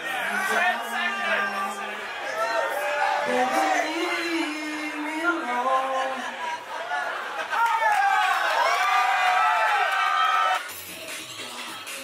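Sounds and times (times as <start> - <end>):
people cheering and whooping: 0.0 - 10.7
club dance music: 10.6 - 12.0.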